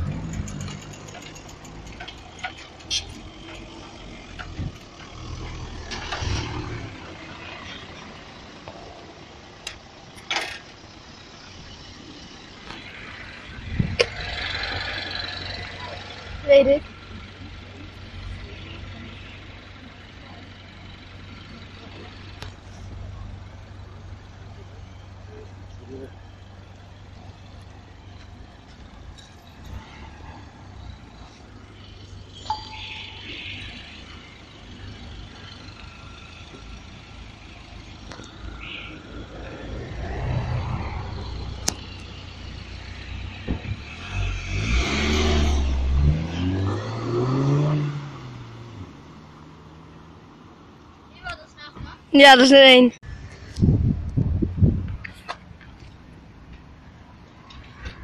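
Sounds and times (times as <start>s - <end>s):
car engine humming: 0.0s - 58.0s
passing vehicles: 0.0s - 58.0s.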